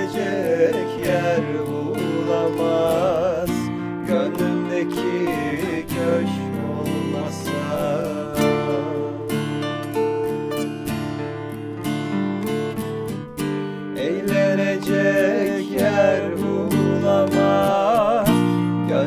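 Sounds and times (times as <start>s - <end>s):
man singing: 0.0s - 9.7s, 14.0s - 19.0s
acoustic guitars strummed and picked: 0.0s - 19.0s.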